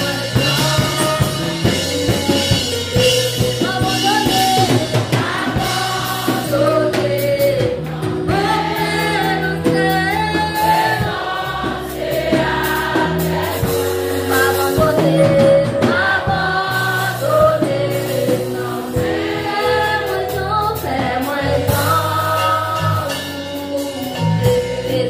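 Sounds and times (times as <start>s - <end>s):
congregation singing: 0.0s - 25.0s
drum kit: 0.0s - 25.0s
electric bass: 0.0s - 25.0s.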